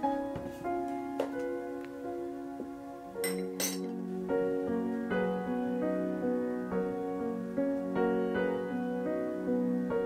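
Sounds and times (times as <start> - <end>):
piano music: 0.0 - 10.0
spoon clinking glass bowl: 3.2 - 3.9.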